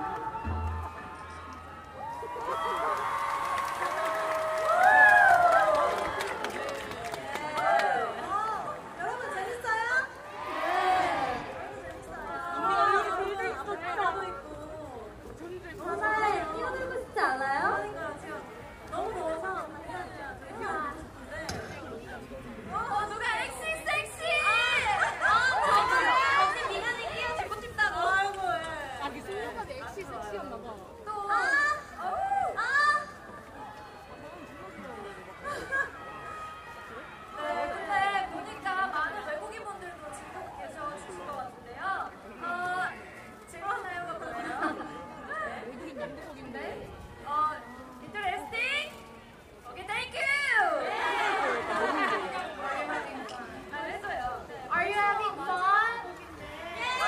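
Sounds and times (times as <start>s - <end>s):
women talking and chattering: 0.0s - 57.0s.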